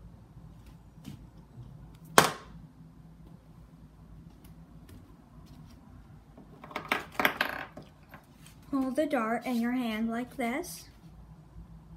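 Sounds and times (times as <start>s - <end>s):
dart striking dartboard: 2.1s - 2.5s.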